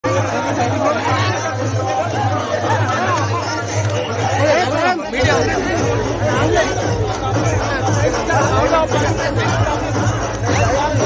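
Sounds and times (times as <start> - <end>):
crowd of men talking: 0.0 - 11.0.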